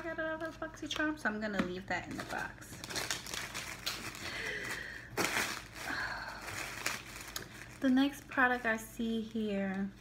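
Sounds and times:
packaging rustling and crinkling: 2.1s - 9.9s.

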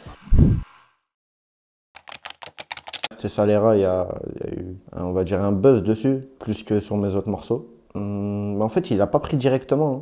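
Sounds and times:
keyboard typing clicks: 2.0s - 3.1s.

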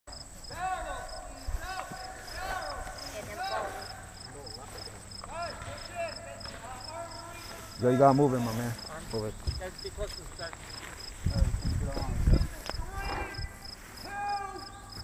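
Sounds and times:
cricket chirping: 0.1s - 15.0s
people talking far off: 0.5s - 15.0s.

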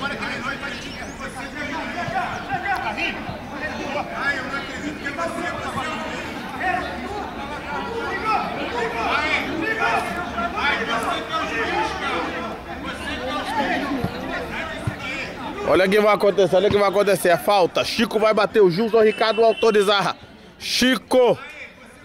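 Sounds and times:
voices talking and calling out: 0.0s - 22.0s.

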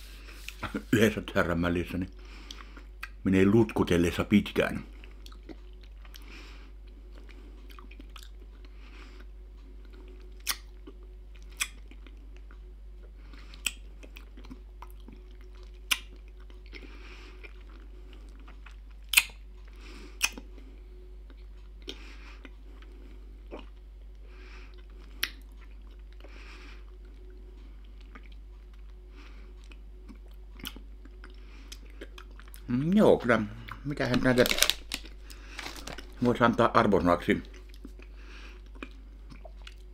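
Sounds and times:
faint steady hum: 0.0s - 39.9s
wet mouth smacks and clicks: 10.4s - 10.7s, 15.9s - 16.1s, 19.1s - 19.4s.

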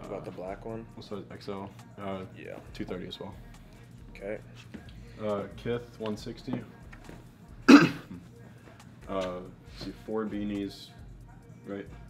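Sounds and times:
man clearing throat: 7.7s - 8.2s.

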